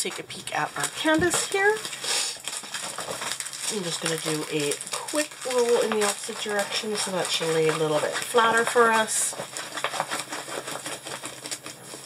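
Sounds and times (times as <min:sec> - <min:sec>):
plastic film crackling: 0:00.0 - 0:12.0.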